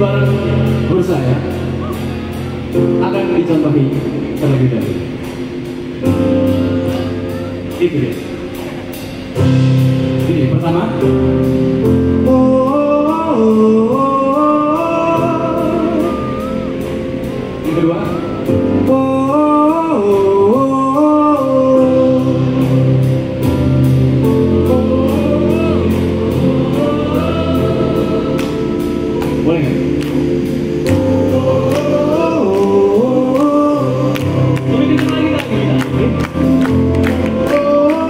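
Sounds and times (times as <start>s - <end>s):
man singing: 0.0s - 4.9s, 12.0s - 23.4s, 24.2s - 30.0s, 30.8s - 38.0s
bass guitar: 0.0s - 38.0s
drums keeping a steady beat: 0.0s - 38.0s
keyboards: 0.0s - 38.0s.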